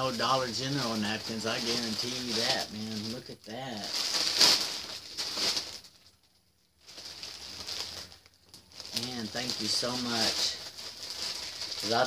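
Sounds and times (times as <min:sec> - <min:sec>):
plastic package crinkling: 0:00.0 - 0:12.0.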